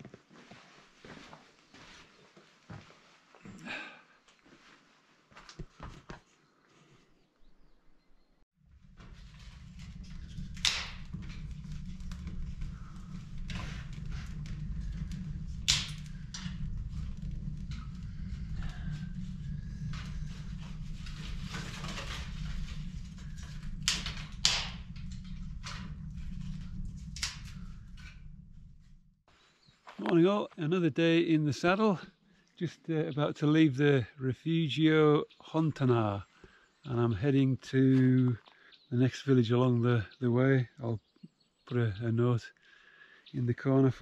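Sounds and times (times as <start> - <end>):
wood fire crackling: 8.6 - 29.3
sharp snaps and pops of fire: 8.7 - 29.0.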